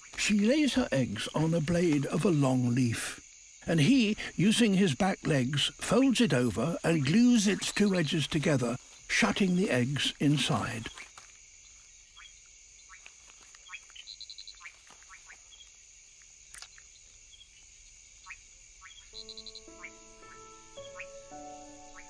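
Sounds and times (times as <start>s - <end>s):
frogs chirping: 0.0s - 22.0s
steady high-pitched hiss: 0.0s - 22.0s
soft sustained music chords: 19.2s - 22.0s.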